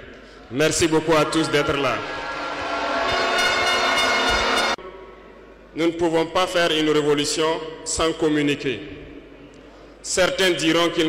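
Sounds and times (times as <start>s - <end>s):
loud horn-like blare: 3.0s - 4.8s.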